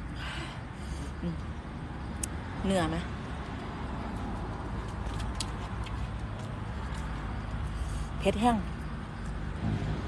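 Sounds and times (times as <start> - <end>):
outdoor rumble and hiss: 0.0 - 10.0.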